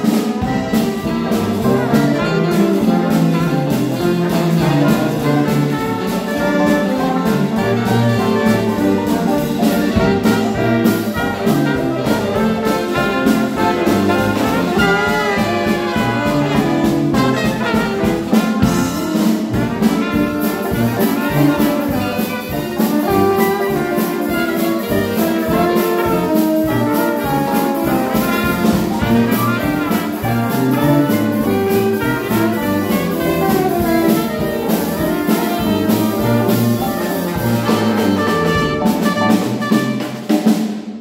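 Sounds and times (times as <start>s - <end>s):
drum kit beat: 0.0s - 41.0s
jazz band playing: 0.0s - 41.0s.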